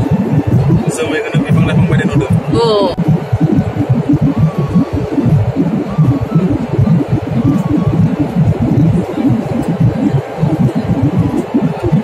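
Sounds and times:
jet airliner cabin rumble: 0.0 - 12.0.

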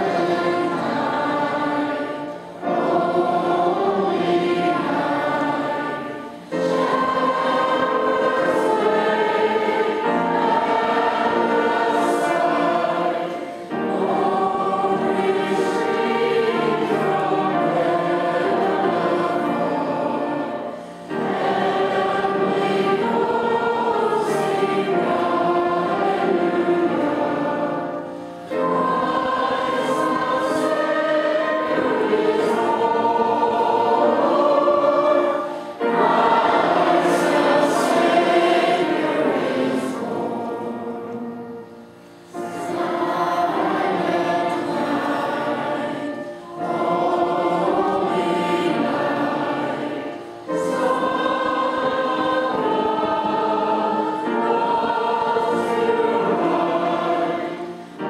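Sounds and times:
group singing a hymn: 0.0 - 58.0.

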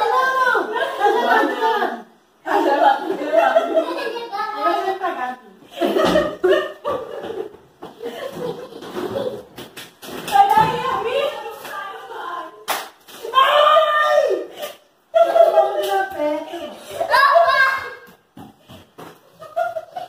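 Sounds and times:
laughter: 0.7 - 9.5, 14.5 - 17.4, 19.2 - 20.0
women and child talking: 10.3 - 12.7.

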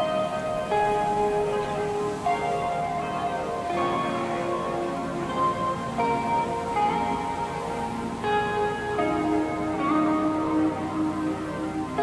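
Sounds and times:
lo-fi hip hop music: 0.0 - 12.0.

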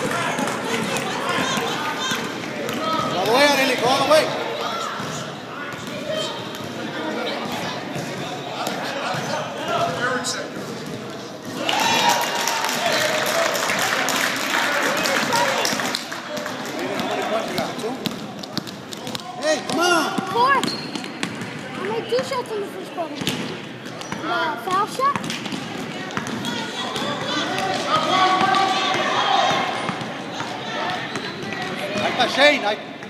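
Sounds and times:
basketball bouncing on gym floor: 16.9 - 22.3, 23.2 - 32.2.

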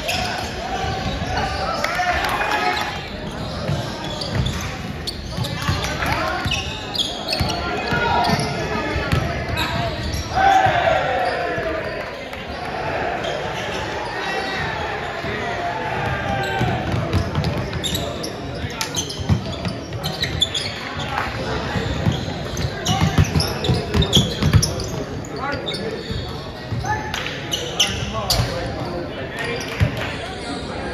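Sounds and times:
people calling out: 5.7 - 17.0.

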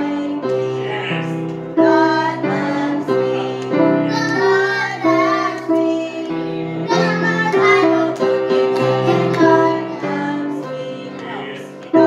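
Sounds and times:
children singing: 0.0 - 12.0
grand piano: 0.0 - 12.0.

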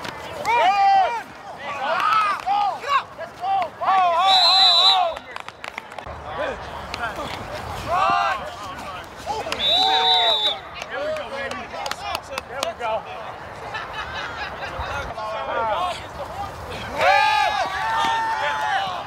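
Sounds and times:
players shouting: 0.0 - 13.0, 14.8 - 19.0
referee's whistle blasts: 4.2 - 5.5, 9.5 - 10.7.

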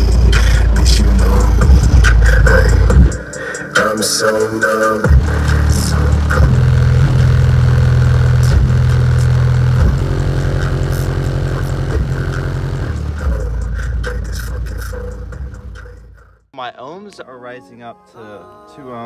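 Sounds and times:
subwoofers playing bass-heavy song: 0.0 - 16.4.

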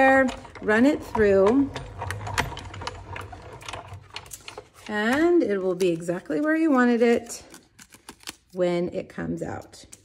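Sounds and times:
machine rollers clicking and creaking: 0.0 - 7.0.

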